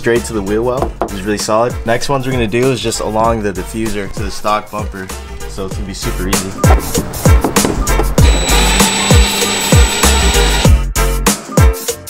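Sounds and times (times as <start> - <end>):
music with heavy kick drum: 6.6 - 12.0
cordless drill running: 8.2 - 10.7.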